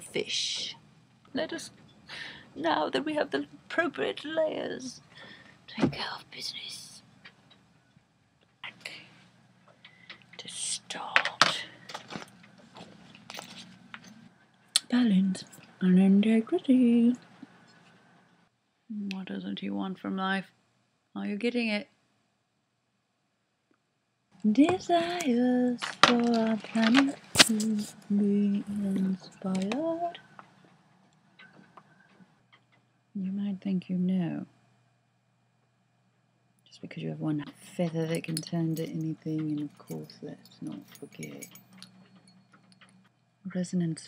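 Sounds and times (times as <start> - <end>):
faint low hum: 0.0 - 44.0
breathy whispering: 5.0 - 7.0.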